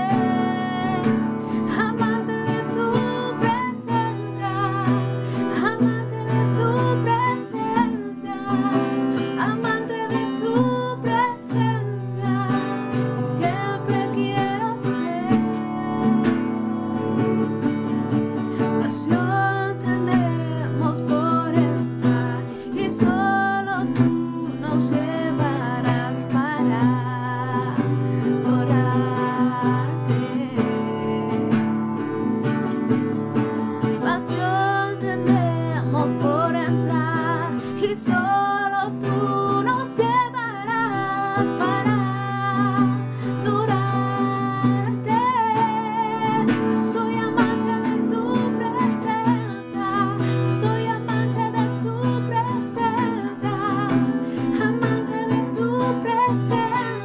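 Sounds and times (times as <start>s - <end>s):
acoustic guitar strumming: 0.0s - 57.0s
person singing: 0.0s - 57.0s.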